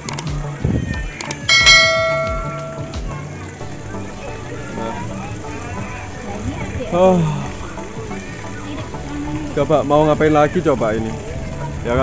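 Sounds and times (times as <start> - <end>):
faint background voices: 0.0 - 12.0
metallic bell ding: 1.5 - 3.2.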